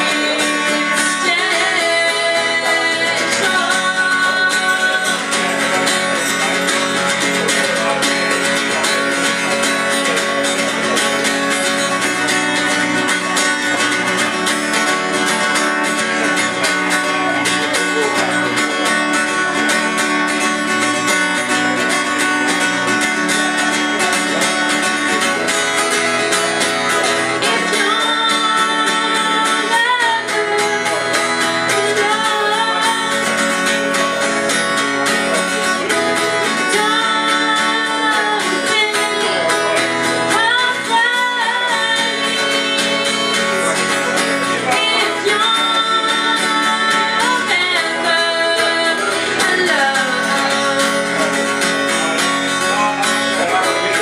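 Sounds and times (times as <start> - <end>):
woman singing: 0.0 - 10.7, 27.1 - 51.4
acoustic guitar strumming: 0.0 - 54.0.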